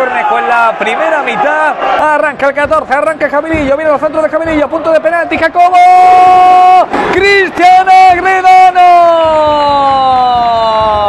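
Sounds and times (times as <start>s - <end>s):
man shouting a long drawn-out name: 4.6s - 11.0s.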